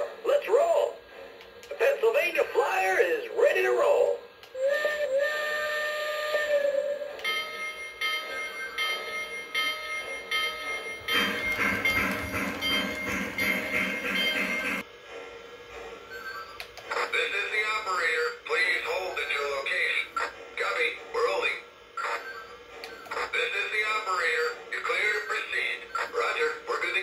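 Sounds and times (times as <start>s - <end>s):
toy train whistle: 4.5s - 7.6s, 11.1s - 14.8s
steam chuffing: 8.9s - 16.2s.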